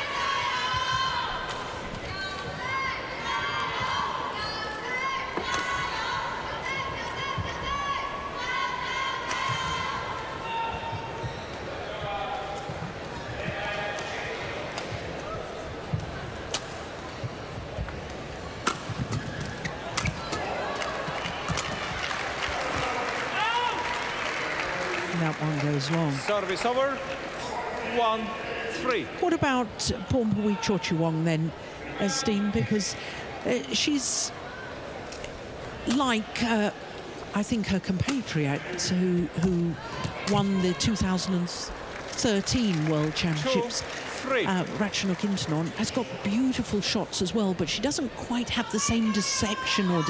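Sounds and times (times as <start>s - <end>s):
crowd noise in a hall: 0.0s - 50.0s.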